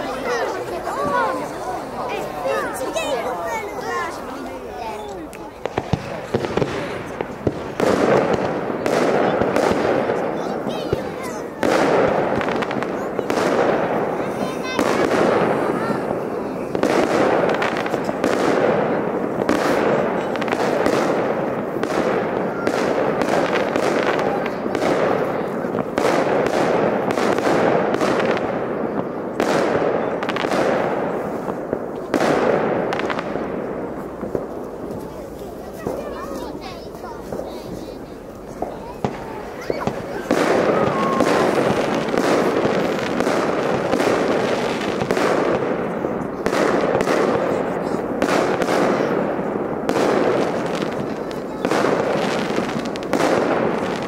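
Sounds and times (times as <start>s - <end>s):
fireworks bursting bangs: 0.0s - 54.0s.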